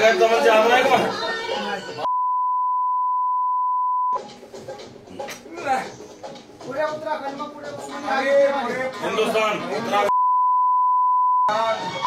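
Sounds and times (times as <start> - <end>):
censor bleep tone: 2.1 - 4.2, 10.1 - 11.5.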